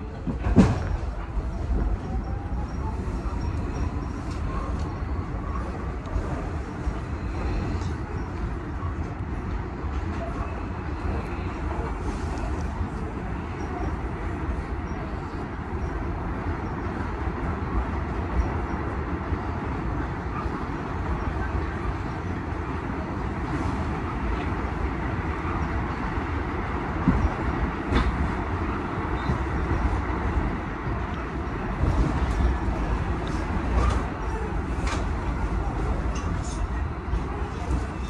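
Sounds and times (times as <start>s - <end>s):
subway wheels rumbling on rail: 0.0s - 38.0s.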